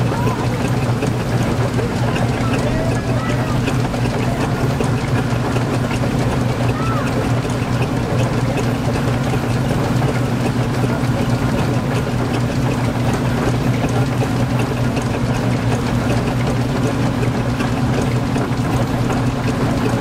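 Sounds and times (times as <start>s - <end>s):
engine running steadily: 0.0s - 20.0s.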